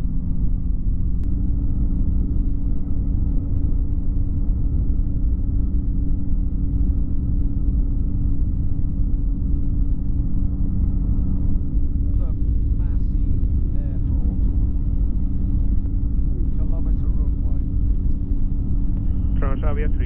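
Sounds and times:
low rumble of wind: 0.0s - 20.0s
microlight engine droning: 0.0s - 20.0s
faint voices: 19.1s - 20.0s.

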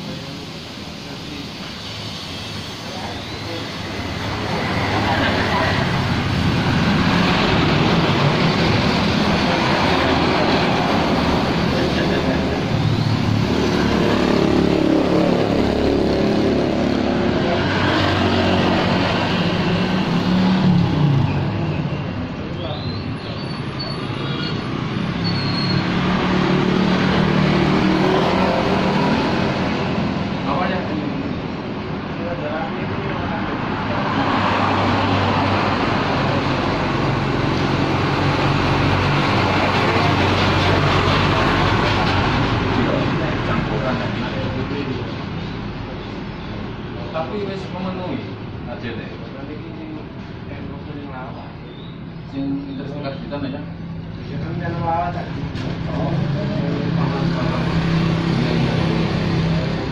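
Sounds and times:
cars passing: 0.0s - 59.9s
motorcycles passing: 0.0s - 59.9s.

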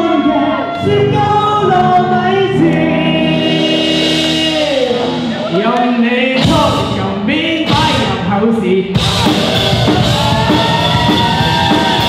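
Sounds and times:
live band playing pop song: 0.0s - 12.0s
person singing: 0.0s - 12.0s.

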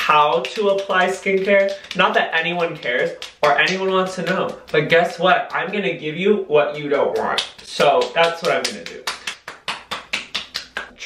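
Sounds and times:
palms patting face skin: 0.0s - 11.0s.

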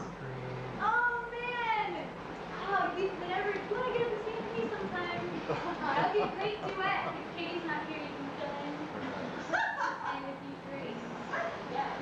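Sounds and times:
people talking and laughing: 2.6s - 12.0s.

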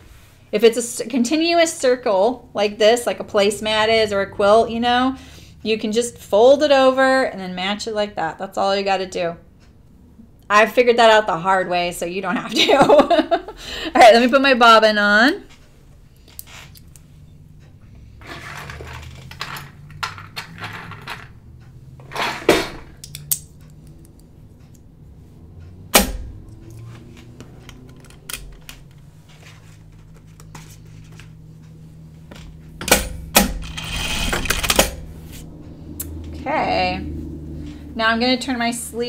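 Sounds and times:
low steady hum: 0.0s - 39.0s
fabric rustling: 29.0s - 31.3s.

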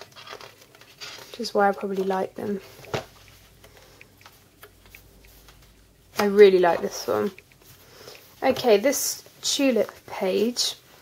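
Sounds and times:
low steady hum: 0.0s - 11.0s
faint ticking: 2.4s - 6.1s, 6.9s - 8.4s.

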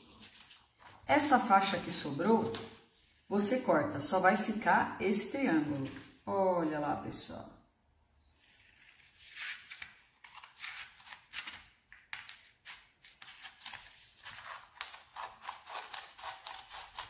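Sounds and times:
scissors snipping paper: 8.4s - 11.6s, 12.2s - 17.0s.

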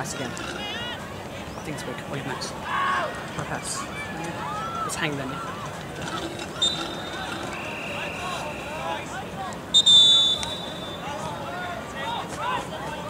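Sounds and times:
spectators chatting: 0.0s - 13.0s
referee's whistle blasts: 6.6s - 8.9s, 9.7s - 11.2s
high steady whistle tone: 6.6s - 9.0s, 9.7s - 11.2s.

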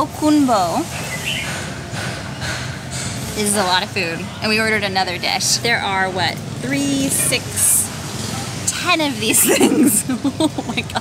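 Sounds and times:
street background noise: 0.0s - 11.0s.

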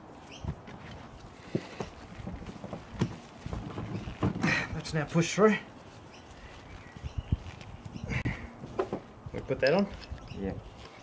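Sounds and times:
carcass handling knocks and rustling: 0.4s - 4.7s, 8.6s - 9.2s.

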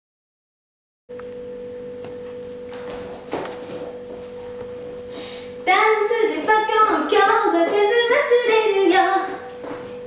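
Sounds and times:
steady single-pitched hum: 1.1s - 10.0s.

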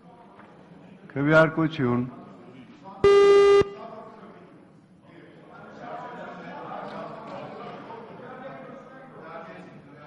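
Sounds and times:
buzzer-like beep: 3.0s - 3.8s.

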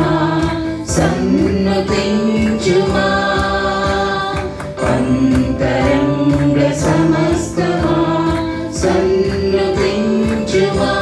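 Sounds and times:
group singing worship song: 0.0s - 11.0s.

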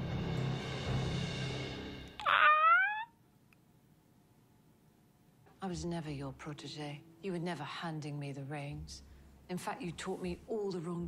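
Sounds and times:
man's high-pitched excited cry: 2.2s - 3.1s.

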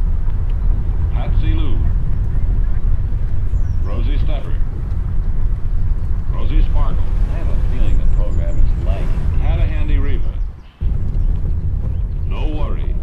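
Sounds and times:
car driving rumble: 0.0s - 13.0s.

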